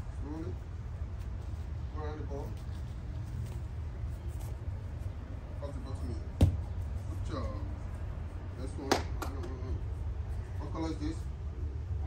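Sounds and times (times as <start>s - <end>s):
bare foot kicking soccer ball: 6.3s - 6.9s.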